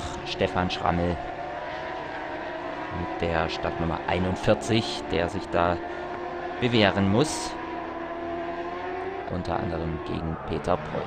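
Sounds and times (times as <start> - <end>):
motorcycles at high revs: 0.0 - 11.0.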